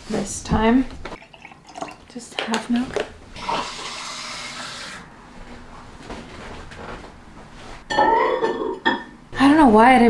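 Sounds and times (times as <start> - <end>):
water running from tap: 3.4 - 5.0.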